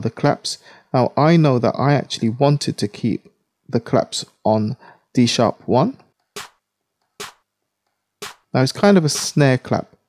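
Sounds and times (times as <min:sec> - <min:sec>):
snare clap drum hits: 0:06.4 - 0:06.6, 0:07.2 - 0:07.5, 0:08.2 - 0:08.5, 0:09.1 - 0:09.4.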